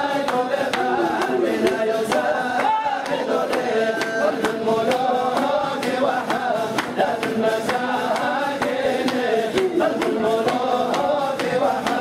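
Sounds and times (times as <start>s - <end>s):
men chanting together: 0.0s - 12.0s
sharp rhythmic beat: 0.0s - 12.0s.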